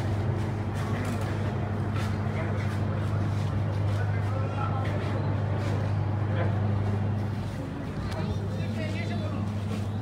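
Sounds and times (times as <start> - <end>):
faint voices: 0.0 - 10.0
steady low-pitched hum: 0.0 - 10.0.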